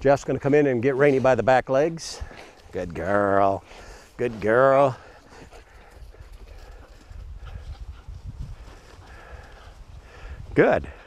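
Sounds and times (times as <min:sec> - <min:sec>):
scuffling on grass: 0:00.2 - 0:10.0
feet shuffling on ground: 0:00.2 - 0:10.8.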